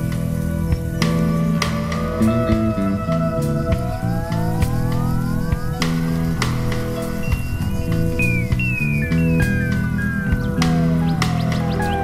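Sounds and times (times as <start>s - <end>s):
bass line: 0.0s - 12.0s
drums: 0.0s - 12.0s
sliding lead guitar: 0.0s - 12.0s.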